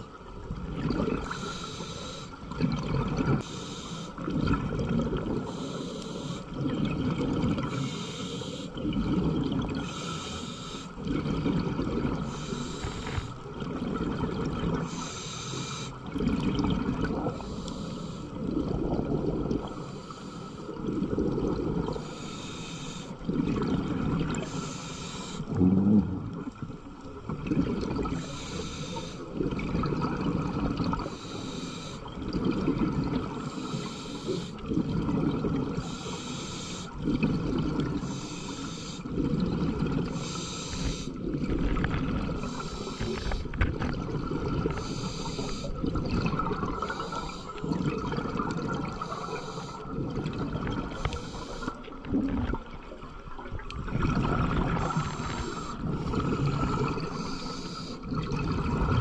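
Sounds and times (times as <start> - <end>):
exhaled bubbles rushing: 0.4 - 1.3, 2.4 - 3.4, 4.2 - 5.5, 6.5 - 7.7, 8.8 - 9.9, 11.0 - 15.0, 16.0 - 17.4, 18.4 - 19.8, 20.7 - 22.1, 23.2 - 24.5, 25.5 - 28.3, 29.3 - 31.2, 32.1 - 33.7, 34.6 - 36.0, 37.0 - 38.2, 39.0 - 59.0
regulator inhale hiss: 1.2 - 2.4, 3.4 - 4.2, 5.4 - 6.5, 7.7 - 8.8, 9.8 - 11.0, 12.2 - 13.4, 14.8 - 16.1, 17.3 - 18.4, 19.7 - 20.8, 22.0 - 23.2, 24.4 - 25.6, 28.2 - 29.3, 31.0 - 32.1, 33.4 - 34.6, 35.8 - 37.0, 38.0 - 39.1, 40.1 - 41.2, 42.4 - 43.6, 44.7 - 45.8, 46.8 - 47.7, 48.9 - 50.0, 50.9 - 51.8, 54.8 - 58.1.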